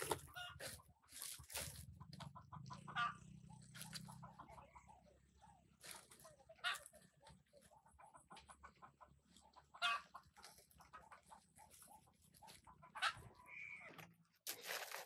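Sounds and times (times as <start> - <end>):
dry leaf thatch rustling: 0.0 - 1.9, 5.8 - 6.2
chickens clucking: 0.0 - 14.2.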